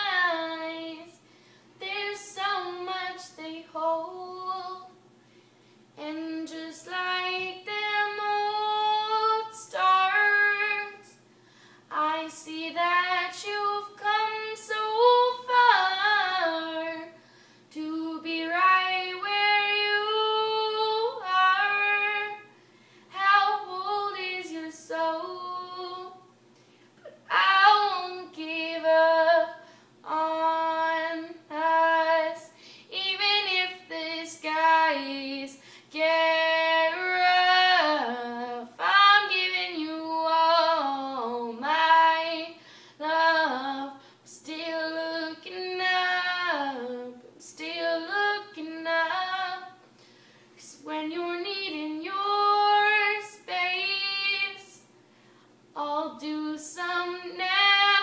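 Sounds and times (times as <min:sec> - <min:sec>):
girl singing unaccompanied: 0:00.0 - 0:05.1, 0:06.0 - 0:11.3, 0:11.9 - 0:22.5, 0:23.1 - 0:26.3, 0:27.0 - 0:49.8, 0:50.6 - 0:54.9, 0:55.8 - 0:58.0.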